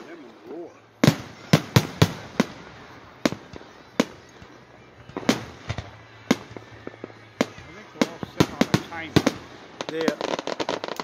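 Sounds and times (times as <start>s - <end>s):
fireworks bangs with echo: 0.9s - 11.0s.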